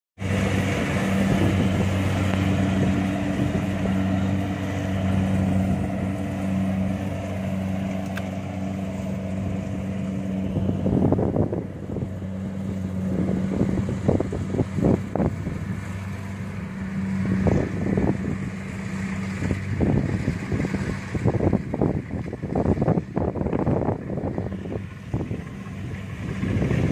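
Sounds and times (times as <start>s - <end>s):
diesel engine running: 0.2s - 26.9s
wind buffeting microphone: 0.2s - 26.9s.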